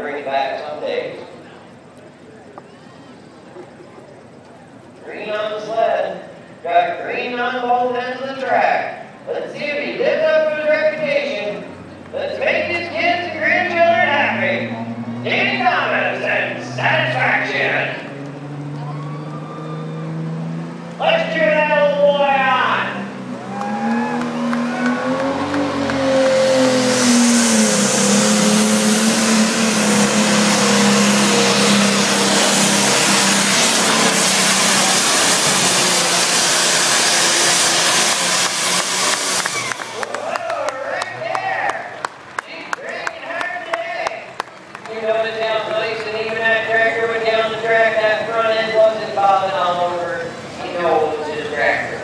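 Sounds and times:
tractor diesel engine under load: 3.2s - 52.0s.

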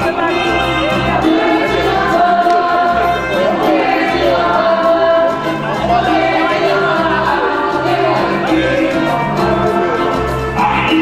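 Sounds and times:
electronic keyboard music: 0.0s - 11.0s
people singing: 0.0s - 11.0s
pulsing bass line: 0.0s - 11.0s.

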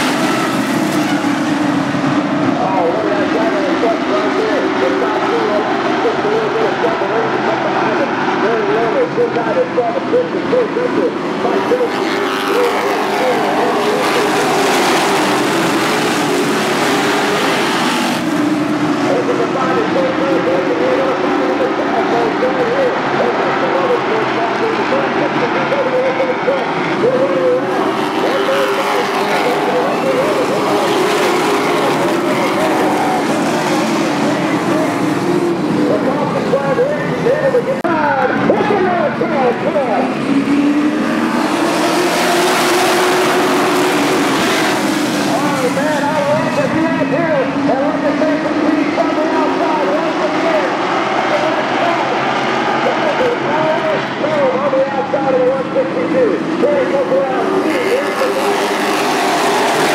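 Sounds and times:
race truck engines passing: 0.0s - 59.9s.

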